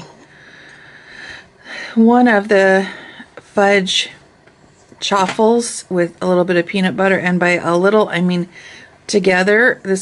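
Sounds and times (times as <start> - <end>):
woman breathing in: 0.2 - 2.0
woman speaking: 1.7 - 4.2, 5.0 - 10.0.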